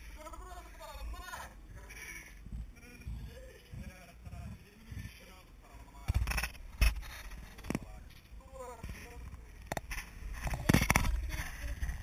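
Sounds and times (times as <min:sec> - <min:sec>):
people chatting: 0:02.8 - 0:06.2, 0:10.4 - 0:12.0.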